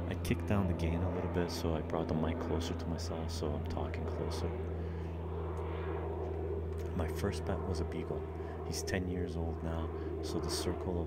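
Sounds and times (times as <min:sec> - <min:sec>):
airplane drone overhead: 0:00.0 - 0:11.0.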